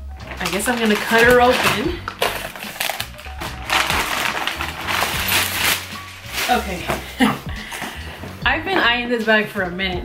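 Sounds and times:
background music: 0.0s - 10.0s
plastic mailer crinkling: 0.2s - 7.2s.

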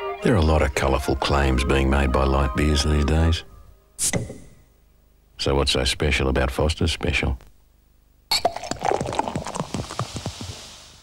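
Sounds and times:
beer glugging from bottle: 8.3s - 10.1s
high foaming fizz: 8.8s - 11.0s.

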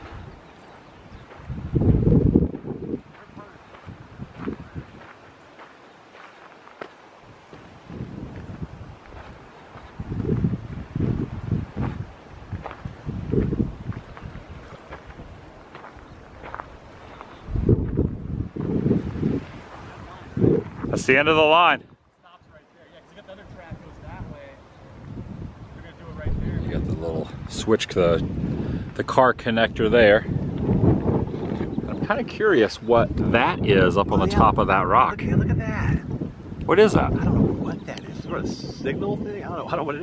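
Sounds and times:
wind buffeting microphone: 0.0s - 6.5s, 7.2s - 22.1s, 23.3s - 40.0s
footsteps through dry grass and gravel: 0.0s - 21.0s.

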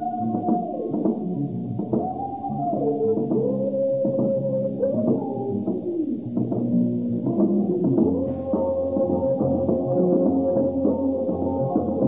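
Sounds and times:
drums: 0.0s - 12.0s.

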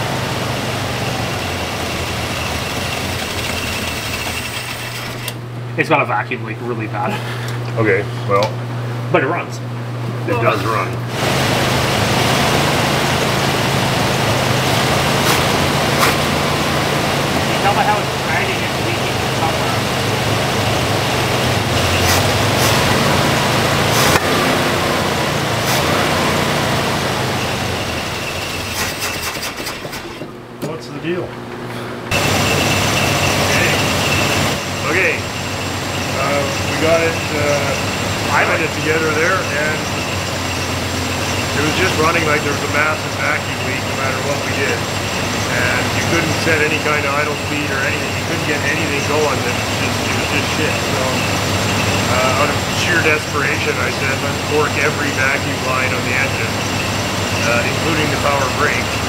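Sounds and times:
truck engine running poorly: 0.0s - 9.2s, 9.8s - 59.0s
people talking: 5.7s - 14.4s, 17.4s - 20.2s, 30.6s - 31.4s, 33.4s - 34.0s, 34.7s - 35.3s, 36.0s - 40.2s, 41.4s - 59.0s.

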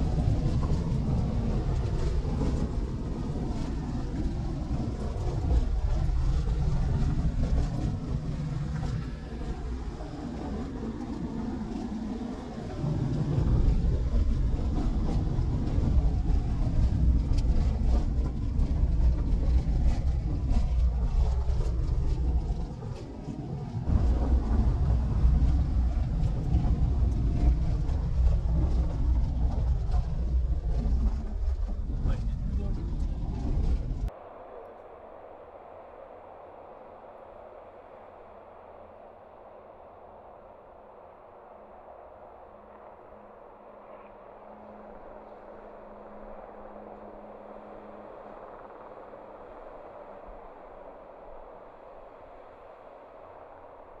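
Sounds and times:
vehicle engine and tyre rumble: 0.0s - 54.0s.

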